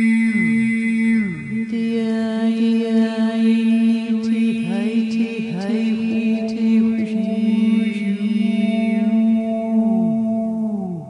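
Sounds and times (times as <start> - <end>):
steady drone: 0.0 - 4.2
woman chanting long tones: 0.0 - 11.0.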